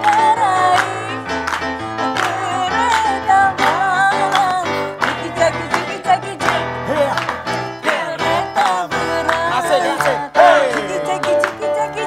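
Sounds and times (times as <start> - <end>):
woman singing: 0.0 - 1.4, 2.0 - 6.8, 7.8 - 12.0
backing music with guitar and beat: 0.0 - 12.0.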